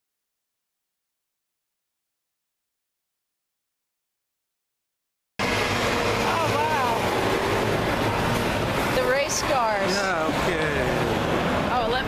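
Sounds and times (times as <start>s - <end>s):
traffic noise: 5.4s - 12.0s.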